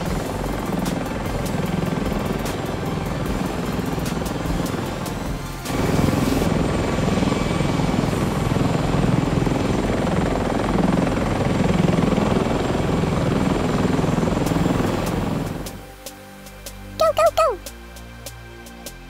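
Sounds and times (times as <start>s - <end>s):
helicopter rotor and engine: 0.0s - 16.9s.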